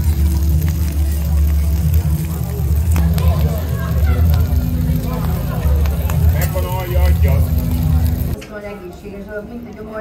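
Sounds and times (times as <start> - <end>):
low mechanical rumble: 0.0 - 8.4.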